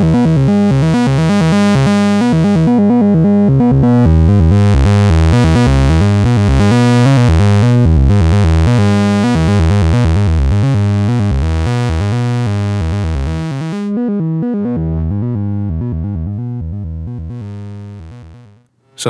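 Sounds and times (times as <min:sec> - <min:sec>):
synthesizer random notes: 0:00.0 - 0:18.6.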